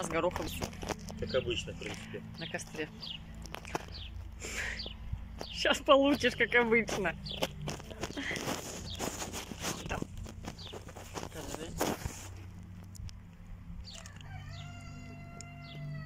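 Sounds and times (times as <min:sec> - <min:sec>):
rooster crowing: 0:13.9 - 0:16.0.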